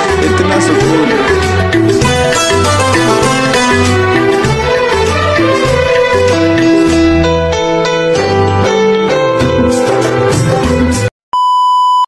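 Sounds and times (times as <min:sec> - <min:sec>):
film song: 0:00.0 - 0:11.1
steady test-tone beep: 0:11.4 - 0:12.0.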